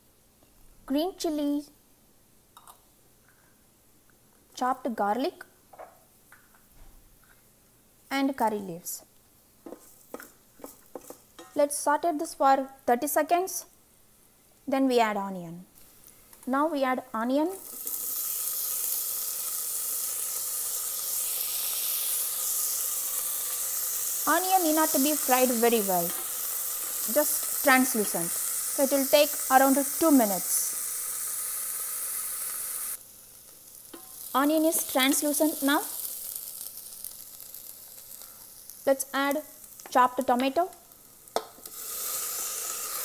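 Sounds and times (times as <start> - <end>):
onion sizzling in hot oil: 17.2 - 43.0.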